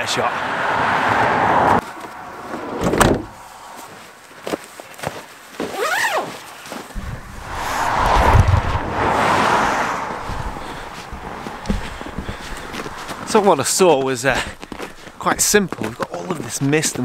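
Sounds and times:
car passing on road: 0.0s - 4.2s, 6.9s - 14.9s
footsteps crunching in snow: 3.4s - 17.0s.

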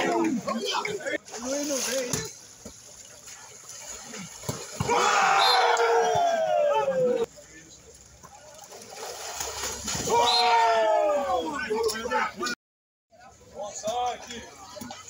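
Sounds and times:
water splashing in a pool: 0.0s - 12.2s
loud wordless shout: 4.8s - 7.3s, 10.0s - 11.7s.

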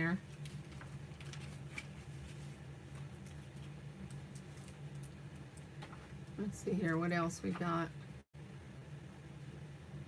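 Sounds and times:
steady low hum: 0.0s - 10.0s
paper rustling and tapping: 0.4s - 3.1s.

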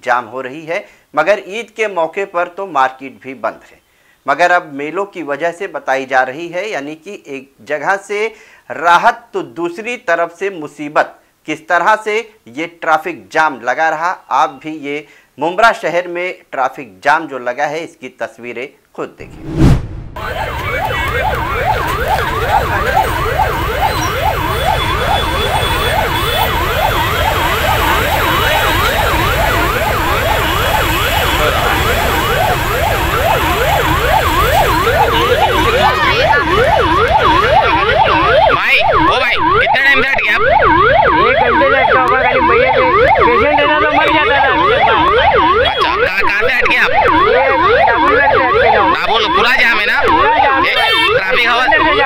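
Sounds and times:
ambulance siren yelping: 20.2s - 52.0s.

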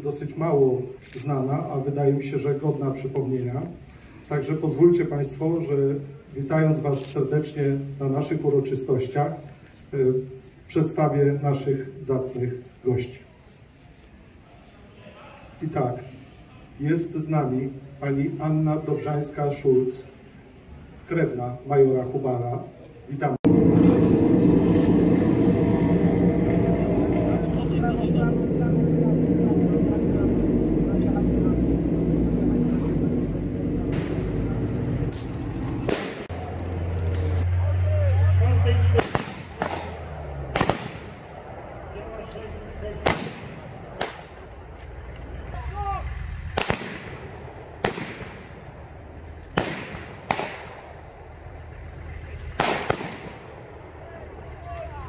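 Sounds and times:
dense steady low sound: 23.3s - 54.7s
strong low hum: 23.4s - 52.6s
blank rifle shots with echo: 35.8s - 36.3s, 39.0s - 41.6s, 43.0s - 44.5s, 46.6s - 48.9s, 49.5s - 51.1s, 52.6s - 53.6s.

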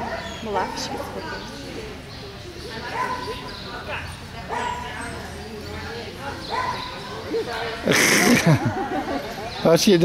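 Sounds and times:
dog barking: 0.0s - 0.9s, 2.9s - 5.0s, 6.5s - 7.2s
faint background chatter: 0.0s - 10.0s.

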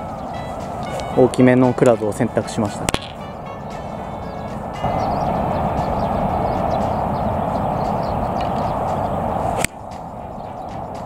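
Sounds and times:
rumble of passing traffic: 0.0s - 11.0s.

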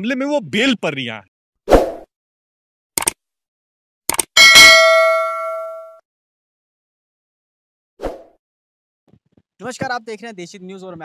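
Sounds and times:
bell ding: 4.4s - 6.0s.

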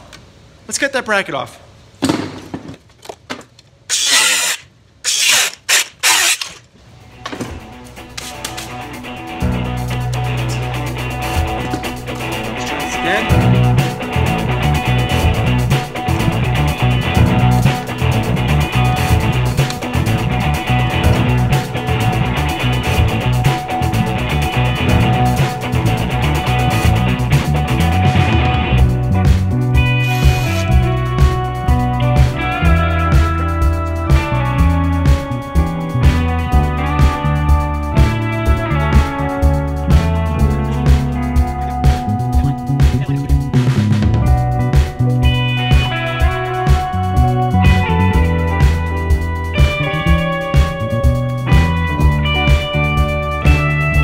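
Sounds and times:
power tool cutting metal: 3.9s - 6.6s
background music with bass line: 7.4s - 54.0s.

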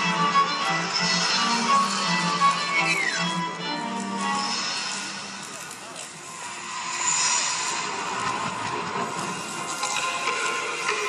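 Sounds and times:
faint sustained music tones: 0.0s - 11.0s
dense wash of noise: 4.5s - 11.0s.

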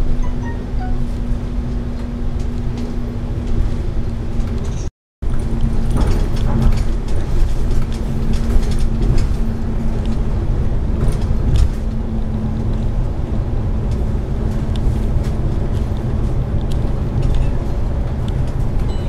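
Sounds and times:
drone: 0.0s - 1.6s
bus engine and road rumble: 0.0s - 19.0s
bodywork rattles and clicks: 2.4s - 13.1s, 13.8s - 19.0s.

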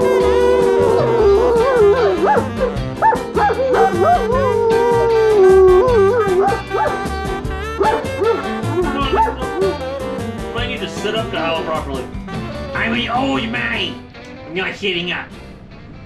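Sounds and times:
dog howling: 0.0s - 10.2s
background music with steady beat: 0.0s - 16.0s.

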